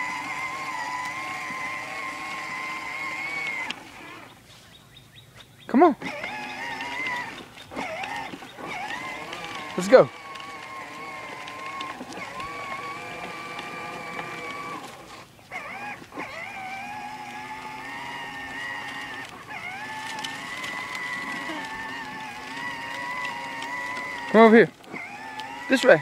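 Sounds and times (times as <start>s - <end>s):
toy quad electric motor whining: 0.0s - 4.5s, 5.9s - 26.0s.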